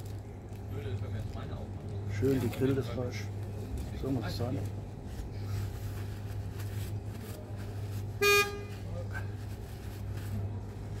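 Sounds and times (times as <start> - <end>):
road traffic rumble: 0.0 - 11.0
paper napkin rustling: 2.1 - 11.0.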